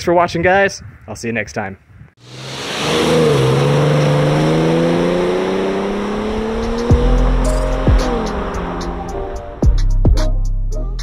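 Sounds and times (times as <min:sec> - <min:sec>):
car engine accelerating: 0:02.2 - 0:09.6
electronic music bass hits: 0:06.6 - 0:10.4.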